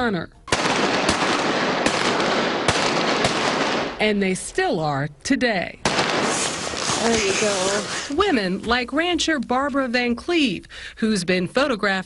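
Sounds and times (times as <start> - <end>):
pistol shots: 0.5 - 4.0, 5.8 - 7.3.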